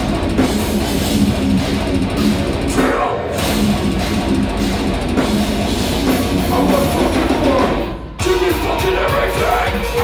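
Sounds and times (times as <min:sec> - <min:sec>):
distorted electric guitars: 0:00.0 - 0:10.0
heavy metal band playing: 0:00.0 - 0:10.0.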